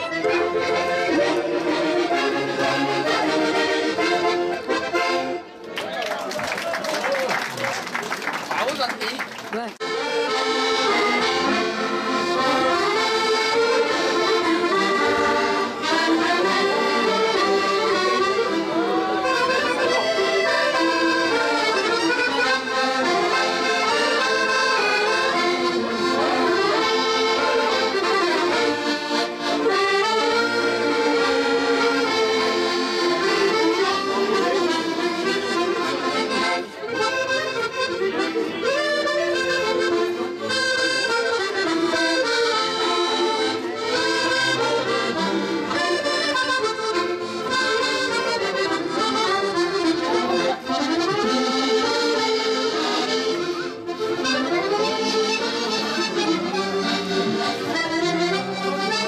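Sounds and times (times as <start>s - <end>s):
accordions playing a tune: 0.0s - 6.1s, 8.0s - 59.0s.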